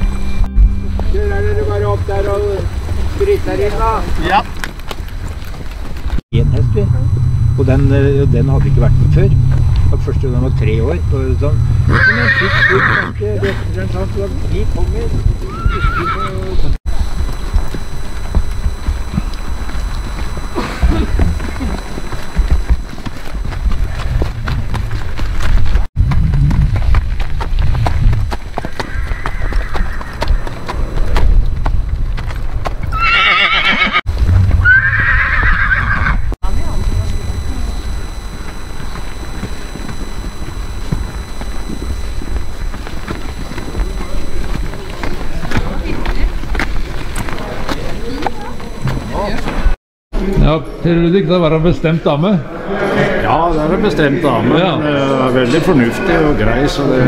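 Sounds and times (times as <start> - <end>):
hoofbeats: 0.8 - 36.4, 38.0 - 49.8
low rumble: 6.1 - 15.6, 16.4 - 28.6, 36.2 - 47.6
horse whinnying: 11.9 - 13.2, 15.4 - 16.6, 28.7 - 30.5, 32.9 - 34.0, 34.6 - 36.3.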